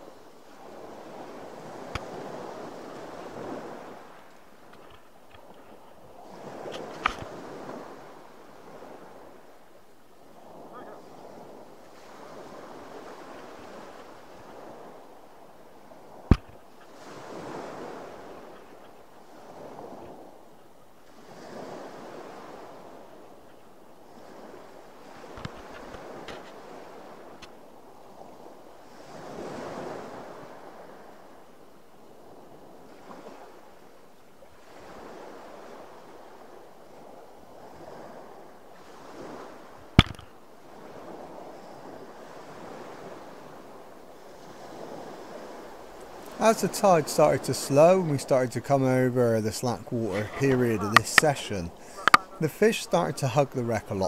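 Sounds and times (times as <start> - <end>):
waves washing against boat: 0.0 - 54.0.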